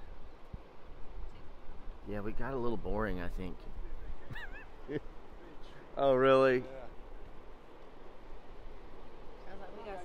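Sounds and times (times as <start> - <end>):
ocean surf washing ashore: 0.0 - 10.0.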